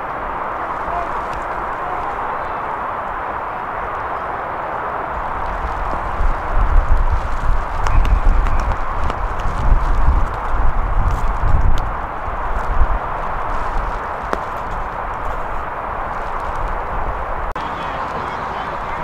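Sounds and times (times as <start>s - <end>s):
steady outdoor hiss: 0.0s - 19.0s
wind buffeting microphone: 0.0s - 19.0s.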